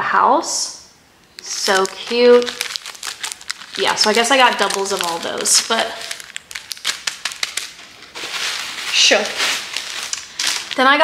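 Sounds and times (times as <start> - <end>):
plastic packaging crinkling: 1.2 - 11.0.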